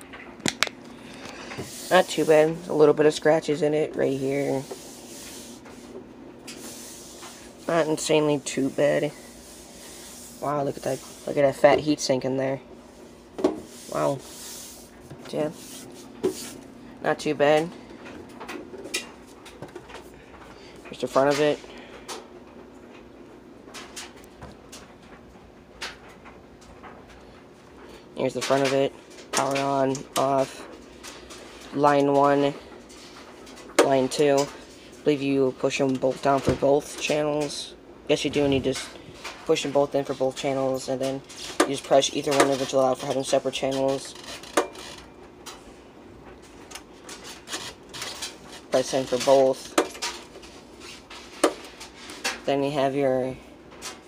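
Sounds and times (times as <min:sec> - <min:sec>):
low steady hum: 0:00.0 - 0:54.0.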